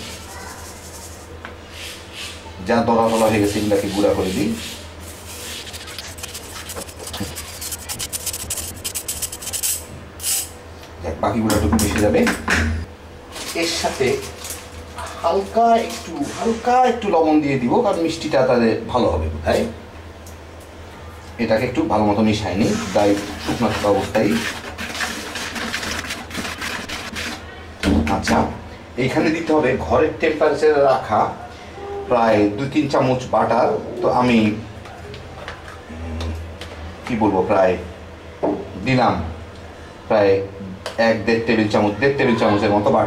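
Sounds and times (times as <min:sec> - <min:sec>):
whisk stirring flour in plastic bowl: 0:00.0 - 0:01.4, 0:03.0 - 0:09.8, 0:22.6 - 0:27.5
metal spoon scraping a mesh sieve: 0:05.4 - 0:09.9.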